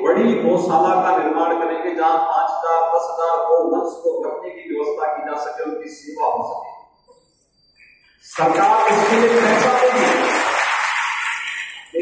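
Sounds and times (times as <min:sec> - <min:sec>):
audience applauding: 0:08.3 - 0:12.0.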